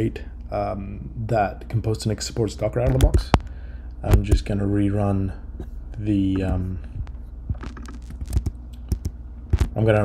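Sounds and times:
keyboard typing: 6.4s - 9.7s.

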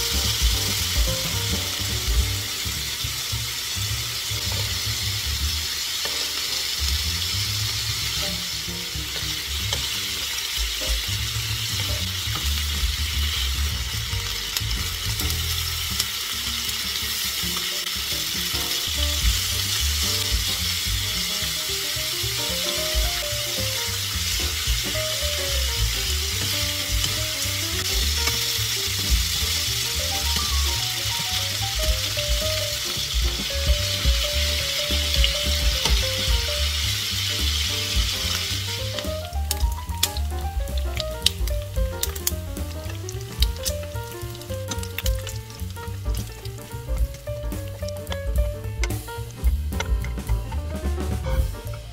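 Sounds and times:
meat sizzling in frying pan: 0.0s - 51.9s
tongs scraping and clicking on pan: 43.1s - 46.3s.

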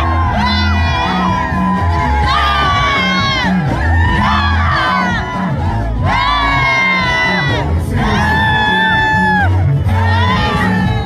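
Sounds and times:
crowd cheering and shouting: 0.0s - 11.0s
live rumba band music: 0.0s - 11.0s.

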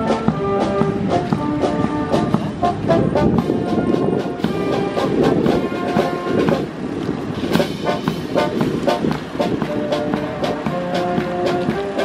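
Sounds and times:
brass band playing a march: 0.0s - 12.0s.

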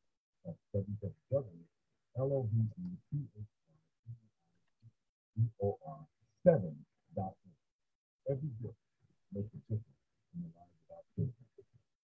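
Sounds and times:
person speaking: 0.5s - 3.4s, 5.4s - 7.4s, 8.3s - 8.7s, 9.3s - 9.8s.

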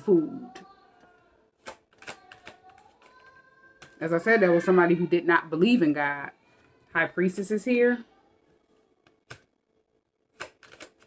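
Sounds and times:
cards being shuffled: 1.6s - 4.0s, 10.3s - 11.0s.

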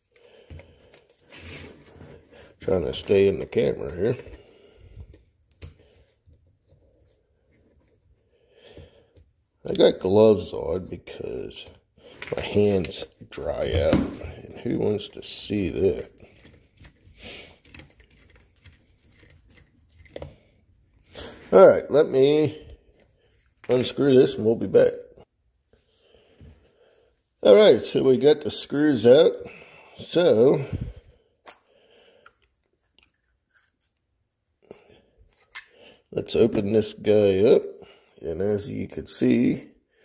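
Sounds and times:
gloved hands rustling and scraping: 0.0s - 24.8s, 30.0s - 36.8s.

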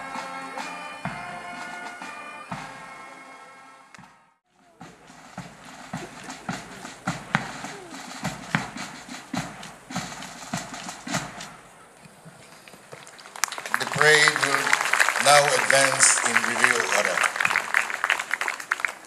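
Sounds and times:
military band music: 0.0s - 19.0s.

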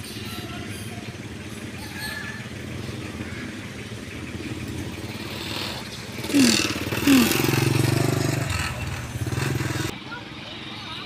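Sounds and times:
small motorcycle engine idling: 0.0s - 11.0s.

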